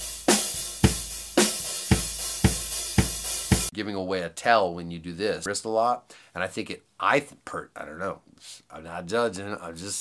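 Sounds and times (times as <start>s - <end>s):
heavy drum strokes: 0.0s - 3.7s.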